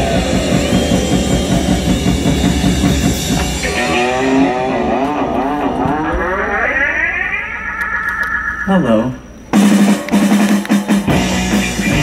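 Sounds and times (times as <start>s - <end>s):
wavering amplified tone with vibrato: 0.0s - 9.2s.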